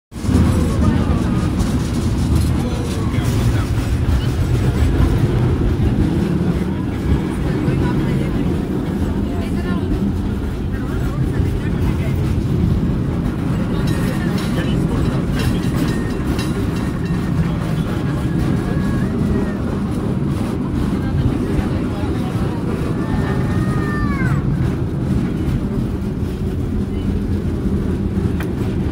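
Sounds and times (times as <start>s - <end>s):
cable car rumbling on track: 0.1s - 28.9s
passengers talking: 0.2s - 28.9s.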